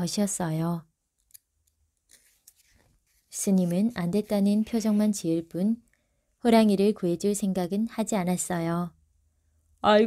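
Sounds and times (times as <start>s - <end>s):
faint soft rustle: 2.1s - 4.6s.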